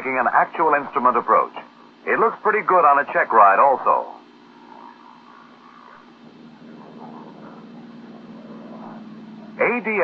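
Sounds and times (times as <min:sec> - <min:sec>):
light aircraft engine drone: 0:00.0 - 0:10.0.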